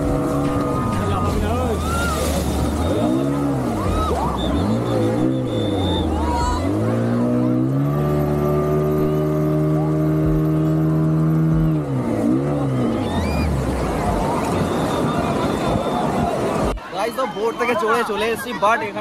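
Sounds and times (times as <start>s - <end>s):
outboard motor revving: 0.0s - 16.8s
rushing water: 0.0s - 19.0s
wind: 0.0s - 19.0s.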